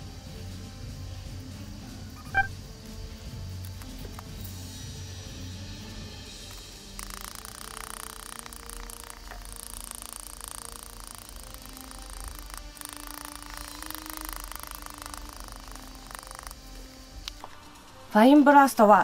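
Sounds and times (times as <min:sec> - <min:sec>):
quiet background music: 0:00.0 - 0:19.0
gritty rattle of shaken ballast: 0:05.8 - 0:18.0.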